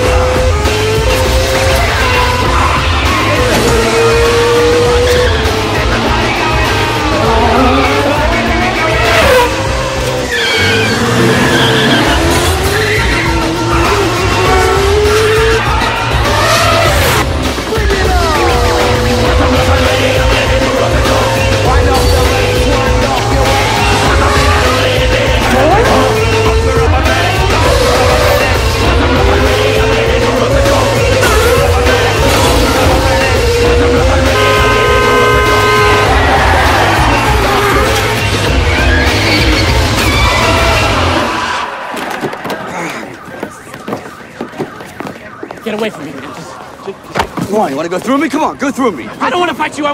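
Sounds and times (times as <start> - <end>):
race car engines revving: 0.0 - 47.1
music with heavy beat: 12.0 - 41.2
car horn long blast: 32.8 - 38.2.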